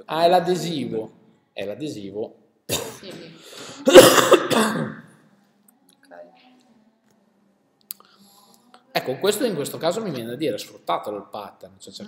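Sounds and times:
man clearing his throat: 3.8s - 5.1s.

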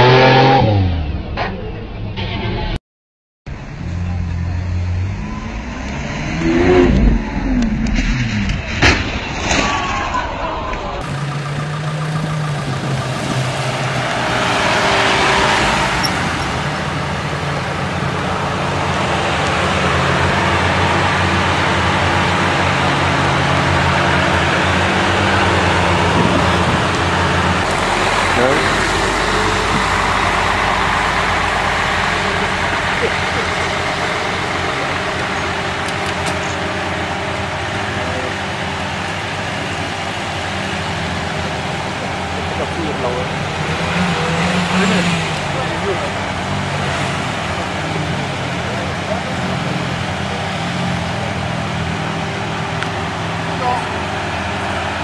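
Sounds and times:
car engines running: 3.5s - 55.0s
people's voices: 9.5s - 39.6s, 41.2s - 55.0s.

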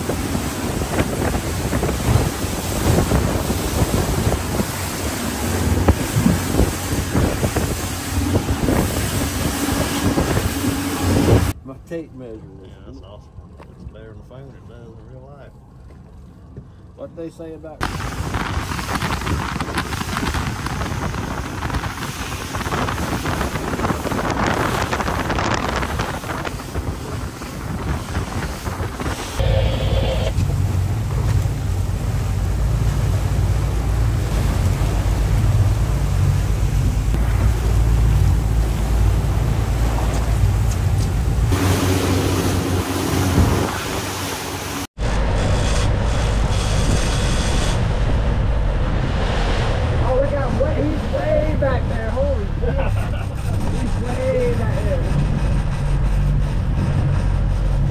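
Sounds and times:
wind buffeting microphone: 0.0s - 11.6s, 17.8s - 57.9s
fishing boat engine running: 0.0s - 48.9s, 50.6s - 57.9s
heavy low rumble: 0.0s - 57.9s
sea: 0.0s - 57.9s.

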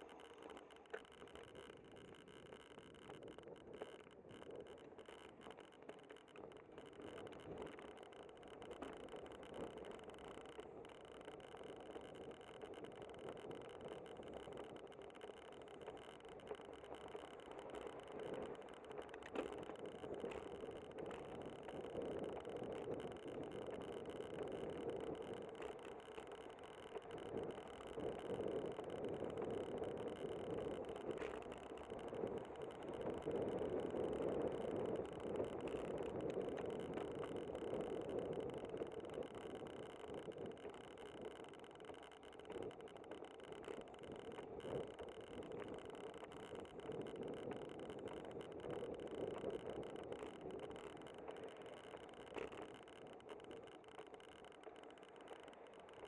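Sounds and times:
faint clicks: 0.0s - 56.0s
bicycle tyre noise: 15.6s - 56.0s.

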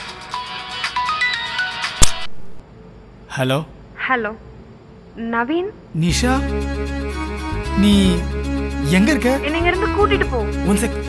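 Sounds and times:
sharp click: 2.0s - 2.6s.

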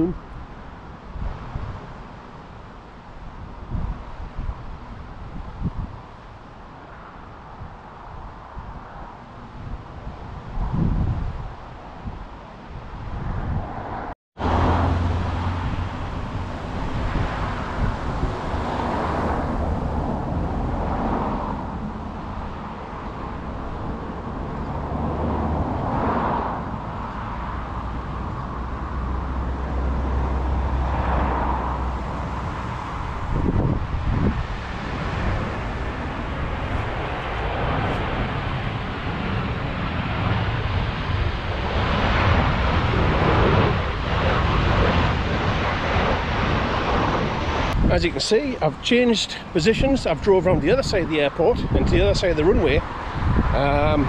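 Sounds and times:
wind gusting on microphone: 0.0s - 54.0s
jet airliner on approach: 12.8s - 54.0s.

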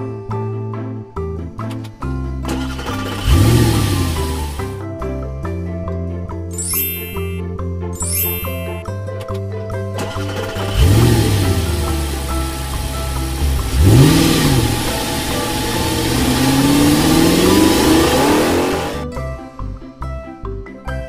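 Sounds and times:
light background music: 0.0s - 21.0s
cartoon car engine revving: 2.5s - 4.8s, 10.0s - 19.1s.

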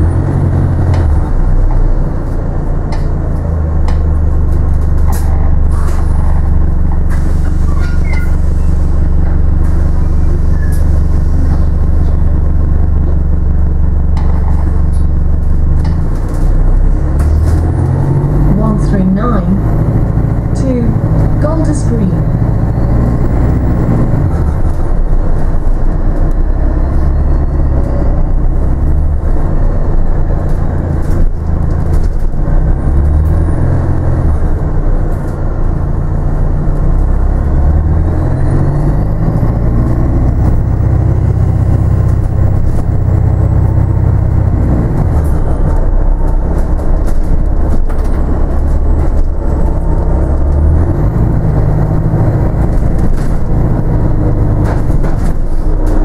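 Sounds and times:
bus drivetrain hum: 0.0s - 56.0s.

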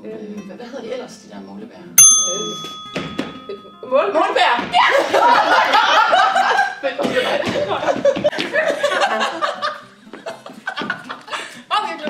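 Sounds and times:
bell ringing ding: 2.0s - 4.1s.

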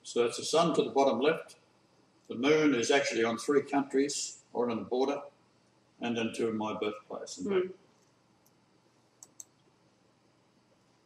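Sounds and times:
computer mouse clicks: 9.2s - 9.7s.

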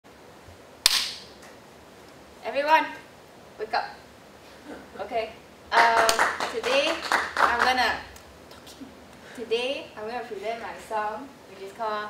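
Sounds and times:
sharp hand clap: 0.8s - 1.3s, 5.7s - 8.6s.

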